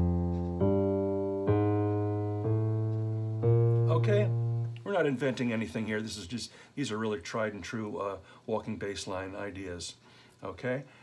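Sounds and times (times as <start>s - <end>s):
digital piano walking bass line: 0.0s - 4.9s.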